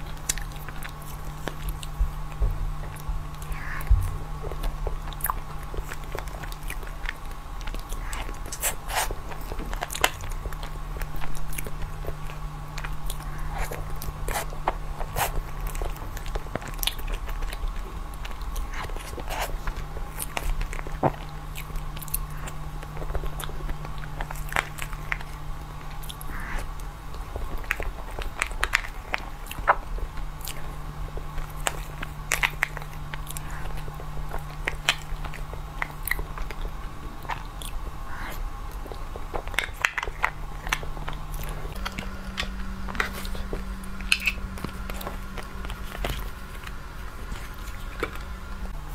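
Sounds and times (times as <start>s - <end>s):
steady low hum: 0.0s - 48.9s
wet chewing and mouth smacks: 0.0s - 48.9s.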